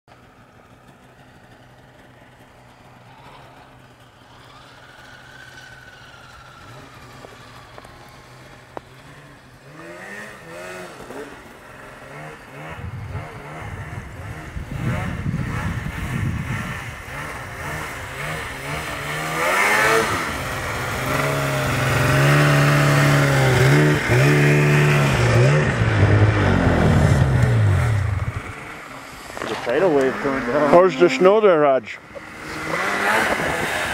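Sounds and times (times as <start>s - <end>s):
snowmobile engines revving: 0.2s - 33.9s.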